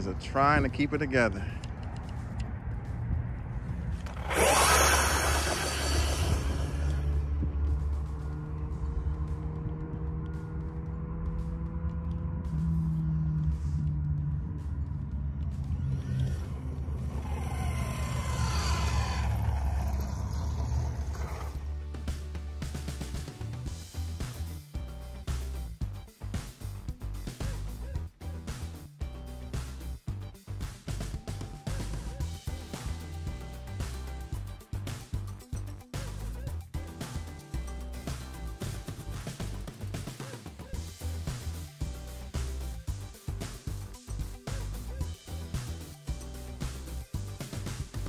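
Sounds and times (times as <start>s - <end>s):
background music: 0.0s - 48.0s
rc truck motor surging past: 3.7s - 9.0s, 15.5s - 21.8s.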